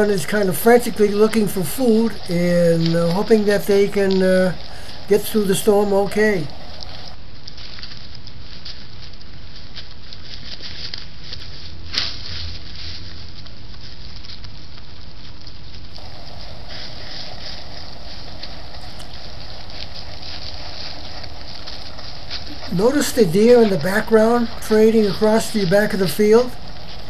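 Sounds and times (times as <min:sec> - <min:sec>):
birds rustling in dry leaves: 0:00.0 - 0:27.0
steady hiss: 0:00.0 - 0:27.0.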